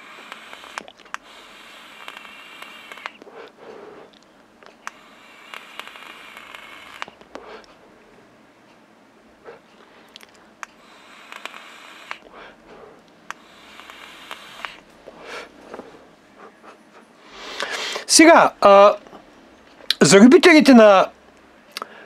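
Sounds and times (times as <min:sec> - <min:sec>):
hiss of air through vape: 0:00.0 - 0:04.2, 0:04.8 - 0:07.7, 0:10.7 - 0:15.9, 0:17.3 - 0:18.8
heating coil crackling: 0:00.0 - 0:07.8, 0:10.3 - 0:16.3, 0:17.4 - 0:21.5
soft breaths: 0:00.0 - 0:19.9, 0:21.6 - 0:22.0.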